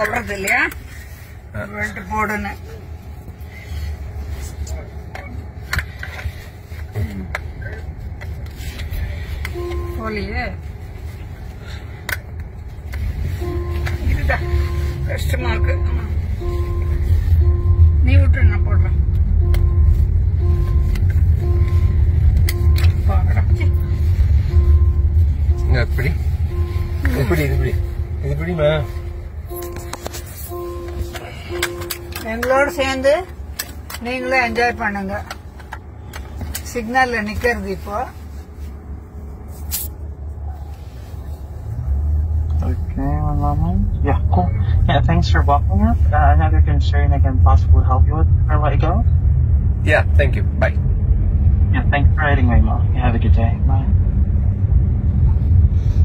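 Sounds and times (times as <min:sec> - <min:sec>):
road and tyre rumble in car: 0:00.0 - 0:56.0
electronic beeps: 0:09.5 - 0:10.3, 0:13.4 - 0:32.8.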